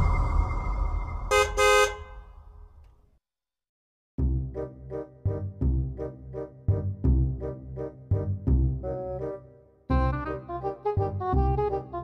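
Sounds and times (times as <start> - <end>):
low rumble: 0.0 - 2.8
car horn honking: 1.3 - 2.4.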